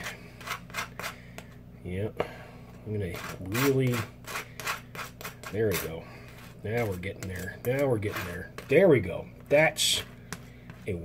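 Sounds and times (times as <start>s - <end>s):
knife scraping spread on toast: 0.0s - 1.3s, 3.1s - 9.0s.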